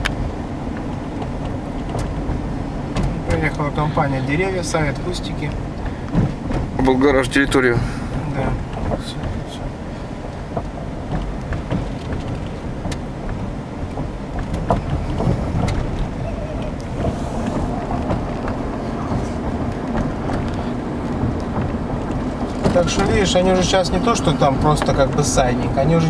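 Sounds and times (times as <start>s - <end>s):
car engine and tyre noise: 0.0s - 26.0s
wind noise: 0.0s - 26.0s.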